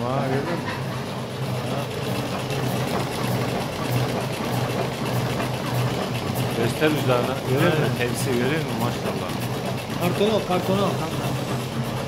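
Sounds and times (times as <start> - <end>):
cigarette filling machine humming: 0.0 - 12.0.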